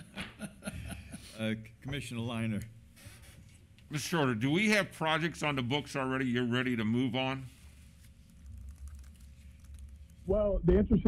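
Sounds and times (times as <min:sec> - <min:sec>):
keyboard typing clicks: 0:08.4 - 0:10.2.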